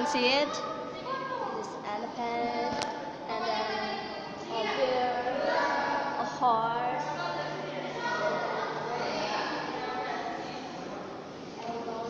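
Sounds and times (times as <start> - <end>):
people talking in sing-song voices: 0.0 - 12.0.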